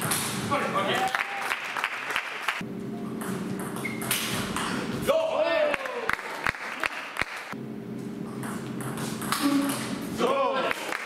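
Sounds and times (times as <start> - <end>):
steady low hum: 2.6 - 5.1, 7.6 - 10.3.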